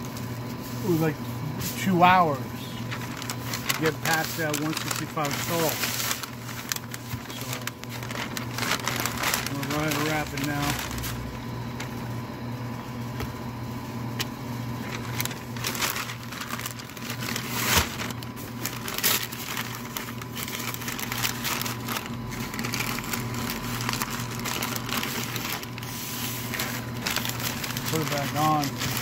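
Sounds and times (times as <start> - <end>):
steady low hum: 0.0 - 29.0
paper crinkling and rustling: 1.8 - 12.0, 14.8 - 29.0.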